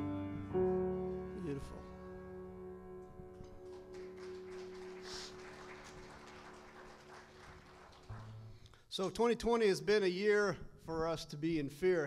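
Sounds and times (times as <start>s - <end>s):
light scattered applause: 3.4s - 8.6s.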